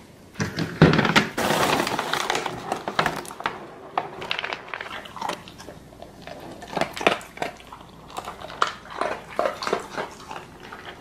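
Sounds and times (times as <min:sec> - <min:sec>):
dog crunching dry kibble: 0:01.4 - 0:11.0.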